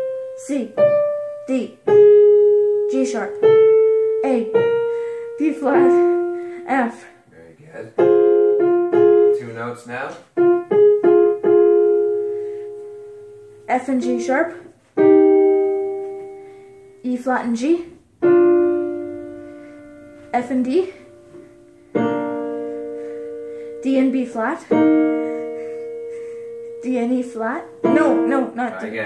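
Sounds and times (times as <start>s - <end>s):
electronic keyboard chord: 0.0s - 6.9s, 7.8s - 17.1s, 18.0s - 29.0s
person speaking: 5.4s - 8.0s, 20.3s - 21.2s, 23.8s - 29.0s
electric keyboard two-note interval: 14.1s - 16.6s, 22.0s - 28.9s.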